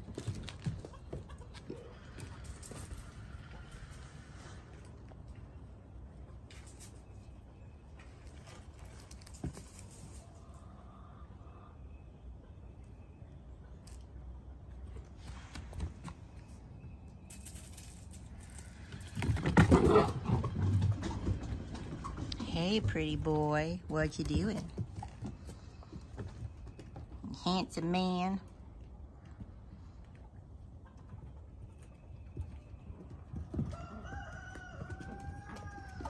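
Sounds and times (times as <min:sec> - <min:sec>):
puppy paws on wooden deck: 0:00.0 - 0:03.0, 0:18.8 - 0:27.4, 0:31.0 - 0:36.0
rooster crowing: 0:33.6 - 0:36.0.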